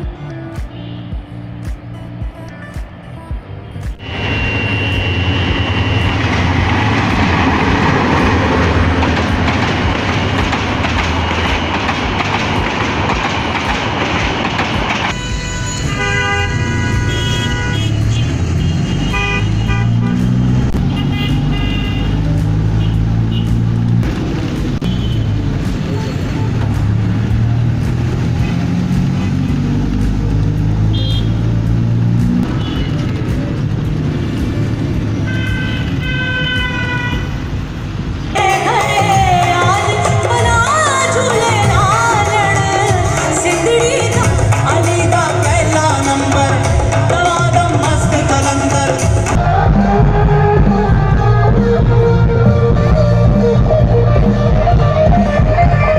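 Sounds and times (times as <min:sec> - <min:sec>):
background music with bass line: 0:00.0 - 0:04.0, 0:19.9 - 0:35.2, 0:38.4 - 0:55.9
traffic: 0:00.0 - 0:55.9
train passing with rushing rumble: 0:00.0 - 0:55.9
train horn tone: 0:04.0 - 0:06.8, 0:15.1 - 0:23.6
car horns: 0:04.0 - 0:11.8, 0:15.0 - 0:23.9, 0:24.8 - 0:26.9, 0:30.8 - 0:31.7, 0:32.4 - 0:33.4, 0:35.2 - 0:37.6.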